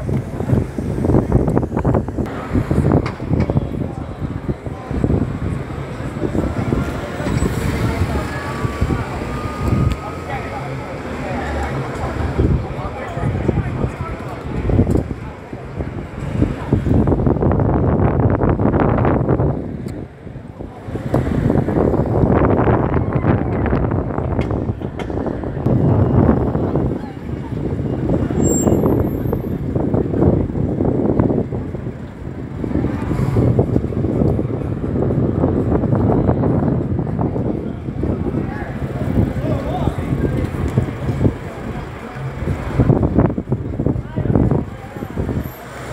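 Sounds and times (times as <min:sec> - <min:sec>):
wind on microphone: 0:00.0 - 0:10.3, 0:11.8 - 0:45.9
bus passing and pulling away: 0:00.0 - 0:45.9
street voices: 0:00.0 - 0:45.9
traffic rumble: 0:00.0 - 0:45.9
faint high squeal: 0:28.4 - 0:29.0.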